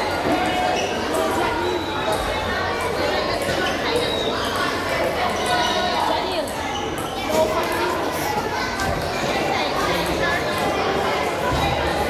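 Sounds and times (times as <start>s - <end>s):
chatter of voices in echoing hall: 0.0s - 12.0s.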